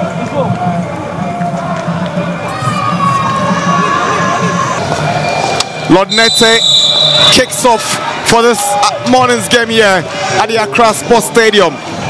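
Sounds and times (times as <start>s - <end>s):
people shouting: 2.3s - 5.3s.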